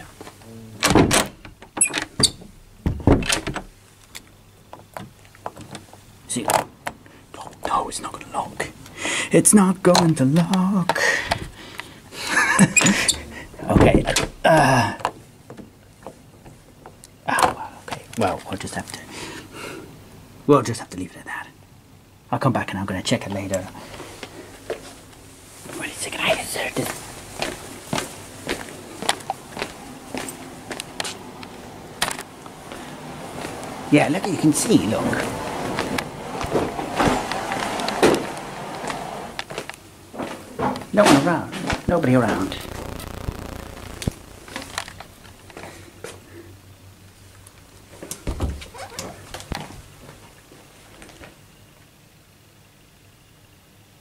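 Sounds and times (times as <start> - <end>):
faint low hum: 41.6 - 54.0.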